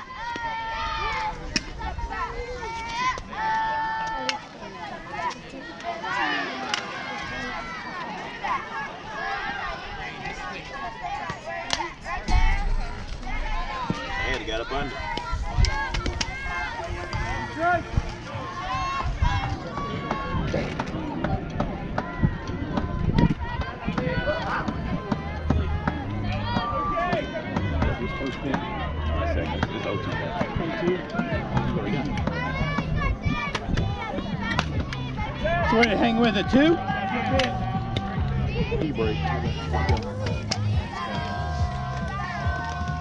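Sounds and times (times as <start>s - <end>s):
chatter of people: 0.0s - 43.0s.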